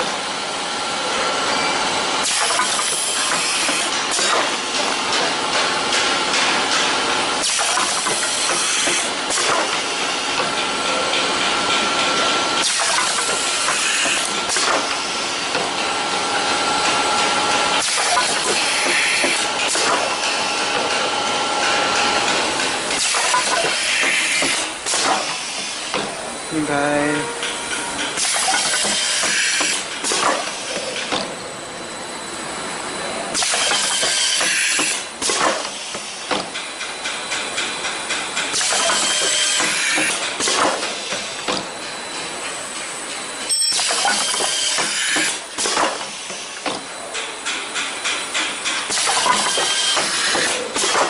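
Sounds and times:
machine mechanical hiss: 2.2s - 15.8s, 16.4s - 51.0s.

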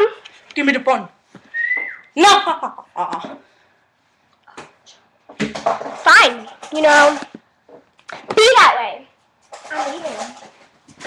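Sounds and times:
girl speaking: 8.3s - 10.4s.

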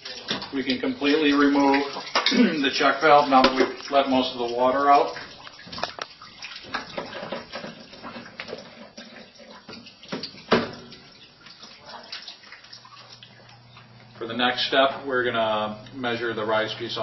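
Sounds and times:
water trickling and dripping: 0.0s - 17.0s.

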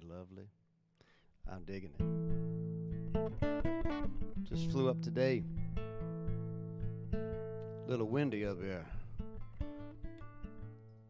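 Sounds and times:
acoustic guitar plucked notes: 2.0s - 11.0s.

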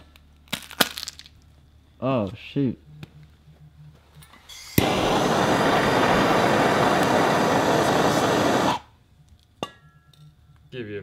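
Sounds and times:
torch flame hissing: 4.5s - 8.9s
gas torch ignition click: 4.7s - 8.9s.

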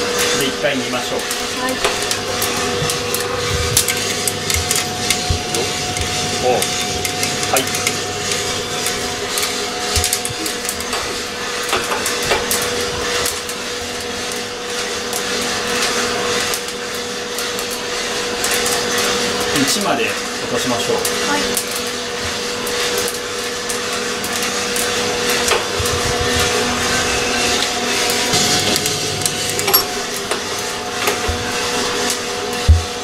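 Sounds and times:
roaster motor and fan hum: 0.0s - 33.0s.

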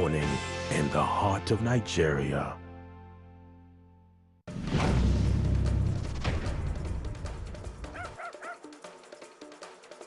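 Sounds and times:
small dog yipping: 7.9s - 8.6s.

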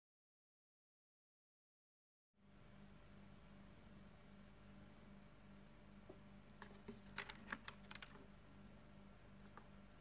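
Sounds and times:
low steady hum: 2.4s - 10.0s.

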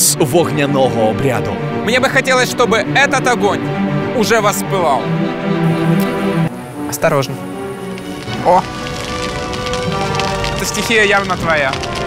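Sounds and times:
background music held tones: 0.0s - 12.0s
bonfire crackling: 5.6s - 12.0s.

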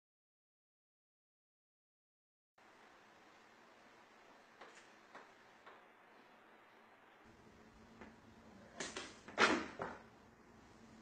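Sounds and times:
faint room hiss: 2.6s - 11.0s.

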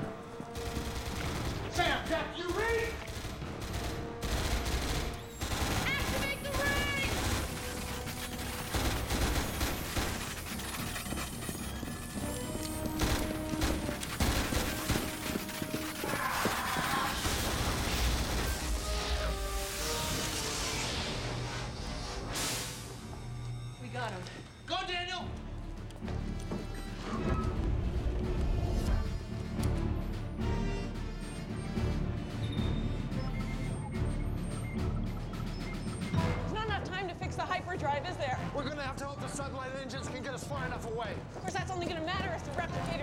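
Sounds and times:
tense music score: 0.0s - 43.0s
automatic gunfire bursts: 0.6s - 1.9s, 2.8s - 12.1s, 12.8s - 18.6s.

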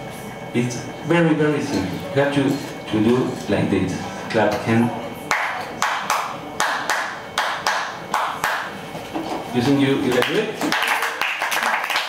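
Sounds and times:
hand claps in a rhythm: 5.3s - 8.7s, 10.1s - 12.0s.

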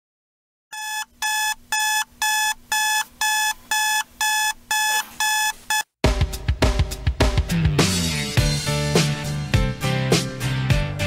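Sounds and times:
alarm beeping: 0.7s - 5.9s.

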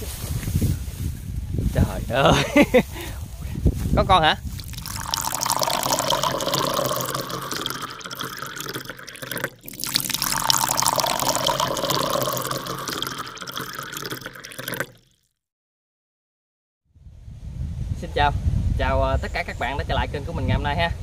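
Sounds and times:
water splashing and rushing: 4.6s - 15.0s.

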